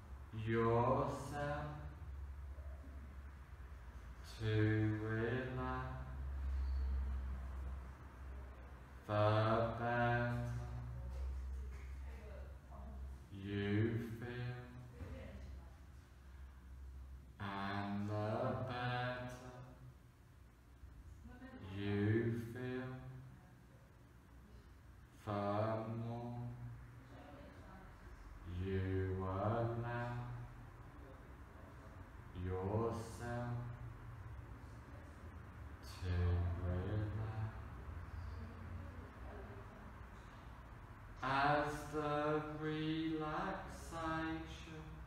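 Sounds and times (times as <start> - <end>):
man chanting low drawn-out tone: 0.0 - 3.4, 4.2 - 8.0, 8.9 - 11.2, 13.2 - 15.0, 17.3 - 20.0, 21.6 - 23.3, 25.2 - 26.9, 28.4 - 31.1, 31.8 - 34.2, 35.7 - 38.5, 41.2 - 45.0
man speaking in slow monotone: 0.2 - 2.1, 4.2 - 6.3, 9.0 - 11.0, 13.2 - 14.9, 17.3 - 19.8, 21.6 - 23.2, 25.1 - 26.8, 28.4 - 30.6, 32.3 - 33.9, 35.8 - 38.0, 41.2 - 45.0.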